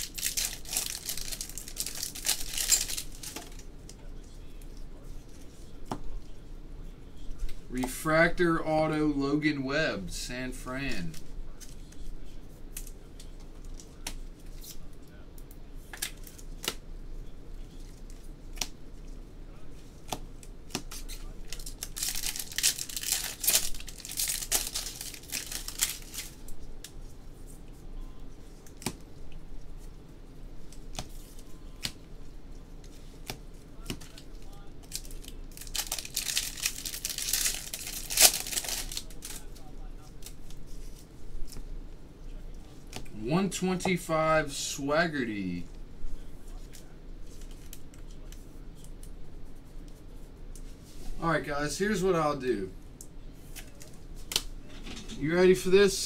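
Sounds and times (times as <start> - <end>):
card pack wrappers ripping: 0.0 - 3.6, 20.7 - 26.4, 33.8 - 40.4.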